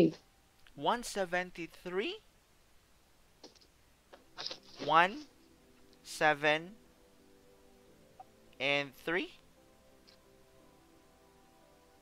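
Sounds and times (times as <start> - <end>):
person speaking: 0.0 - 2.3, 4.3 - 5.4, 8.6 - 9.4.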